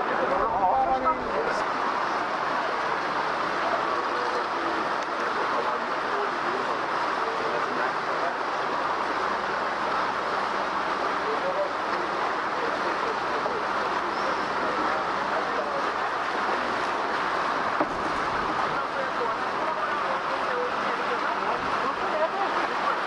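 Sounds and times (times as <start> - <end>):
murmur of passenger voices: 0.0 - 23.0
tour boat under way: 0.0 - 23.0.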